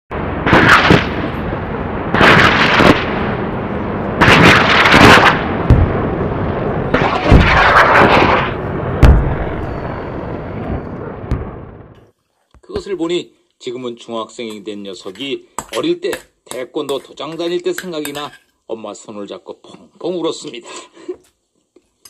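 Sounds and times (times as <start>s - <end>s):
explosion-like booms: 0.1s - 12.0s.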